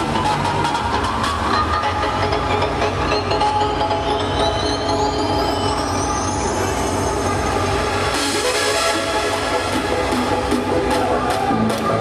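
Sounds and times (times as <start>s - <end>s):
loud hardstyle dance music: 0.0s - 12.0s.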